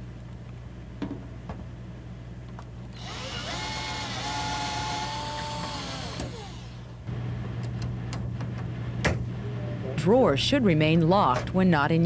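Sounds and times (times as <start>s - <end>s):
cordless drill driving screw: 3.0s - 6.8s.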